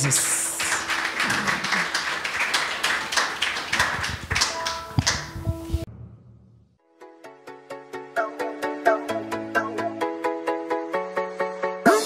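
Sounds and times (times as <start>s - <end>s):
congregation clapping: 0.0s - 5.4s.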